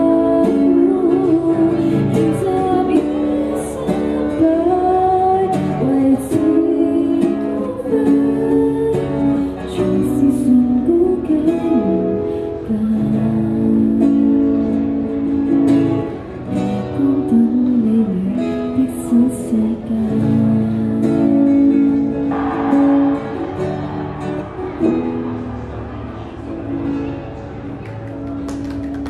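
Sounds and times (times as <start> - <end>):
woman singing into a microphone: 0.0 - 15.1, 16.7 - 21.8
acoustic guitar strumming: 0.0 - 27.8.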